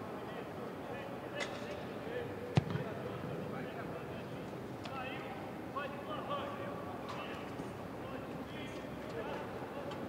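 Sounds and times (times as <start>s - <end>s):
stadium ambience: 0.0s - 10.0s
football being kicked: 2.6s - 2.9s.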